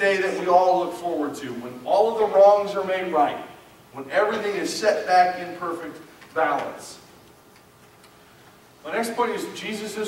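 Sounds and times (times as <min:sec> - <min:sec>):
man speaking: 0:00.0 - 0:07.1, 0:08.8 - 0:10.0.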